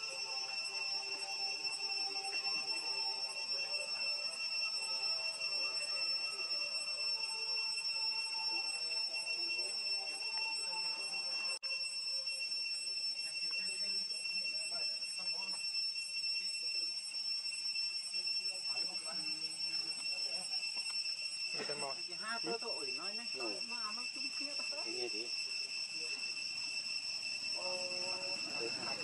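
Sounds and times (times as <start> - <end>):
high-pitched insect drone: 0.0 - 29.0.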